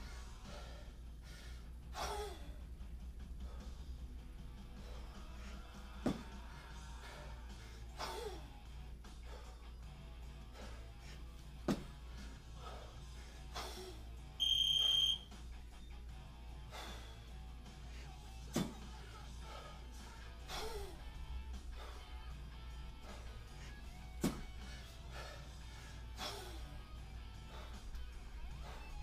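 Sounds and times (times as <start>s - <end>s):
background music: 0.0s - 29.0s
high electronic beep: 14.4s - 15.2s.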